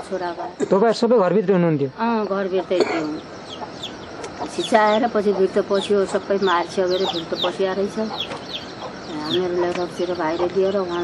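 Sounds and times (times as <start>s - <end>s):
birds chirping: 0.0s - 11.0s
elderly woman speaking: 2.0s - 3.2s, 4.4s - 8.3s, 9.1s - 11.0s.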